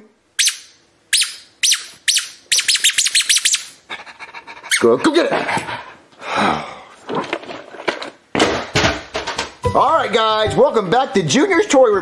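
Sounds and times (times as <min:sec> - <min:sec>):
rubber squeaky toy squeaks: 0:00.4 - 0:03.8.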